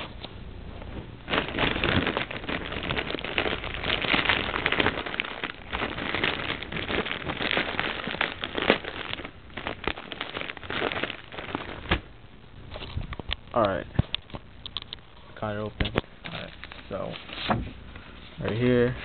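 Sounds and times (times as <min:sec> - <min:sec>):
package crinkling: 0:01.2 - 0:15.3.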